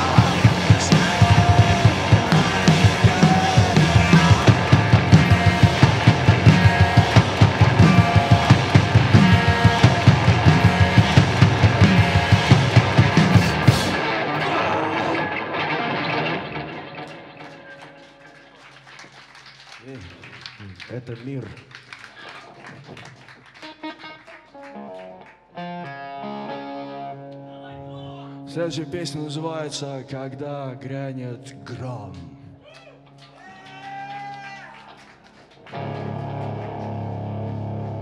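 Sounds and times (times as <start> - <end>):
drum kit beating: 0.0 - 14.1
electric guitar: 0.0 - 18.9, 22.5 - 38.0.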